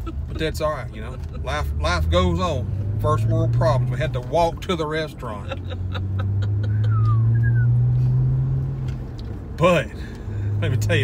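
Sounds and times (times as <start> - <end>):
car cabin engine and road drone: 0.0 - 11.0.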